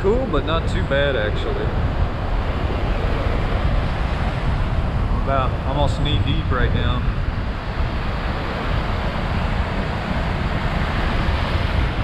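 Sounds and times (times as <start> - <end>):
surf breaking in shallow water: 0.0 - 12.0
wind buffeting microphone: 0.0 - 12.0.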